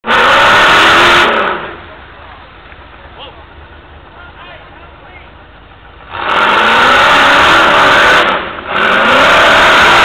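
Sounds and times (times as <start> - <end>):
buggy engine revving hard: 0.0 - 2.0, 6.0 - 10.0.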